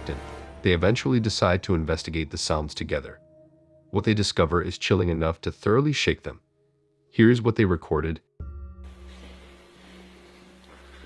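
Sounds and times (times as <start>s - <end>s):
even hiss: 8.9s - 11.0s.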